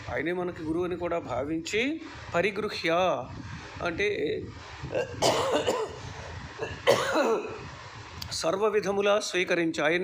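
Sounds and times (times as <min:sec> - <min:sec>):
man coughing harshly: 0:04.9 - 0:07.7.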